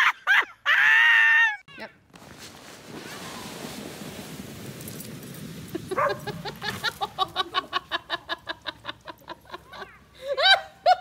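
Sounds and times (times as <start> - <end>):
snow tube sliding over snow: 2.1 - 7.9
dog barking excitedly: 6.0 - 6.2.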